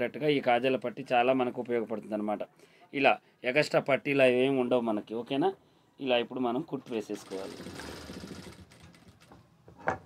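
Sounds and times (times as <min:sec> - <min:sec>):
sewing machine stitching: 0:06.9 - 0:09.4.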